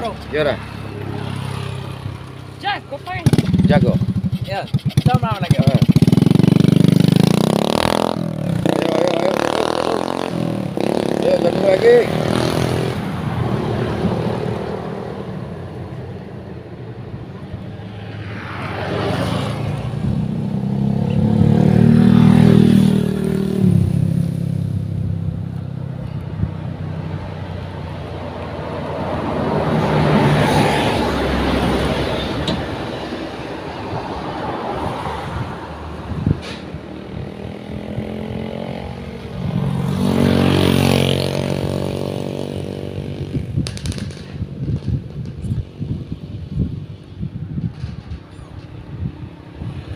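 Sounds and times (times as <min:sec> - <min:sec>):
motorcycle passing: 0:00.0 - 0:49.9
vehicles passing: 0:00.0 - 0:49.9.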